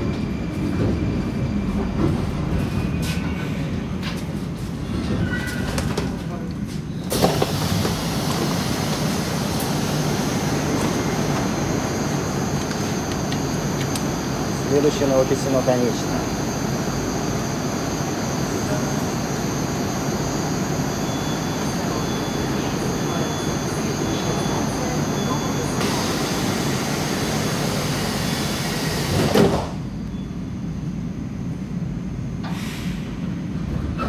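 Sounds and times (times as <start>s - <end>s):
metro platform noise: 0.0s - 34.0s
train humming: 0.0s - 34.0s
sliding doors shutting with a knock: 29.0s - 29.8s.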